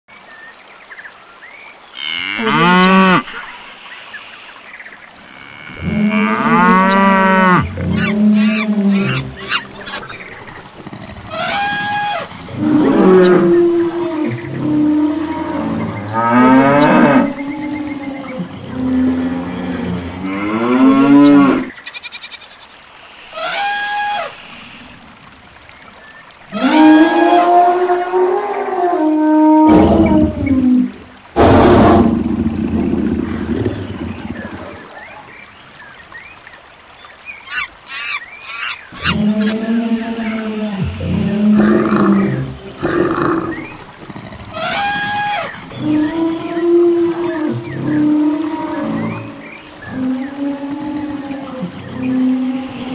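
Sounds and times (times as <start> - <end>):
animal calls: 6.6 - 15.2
harsh noisy animal call: 37.5 - 46.6.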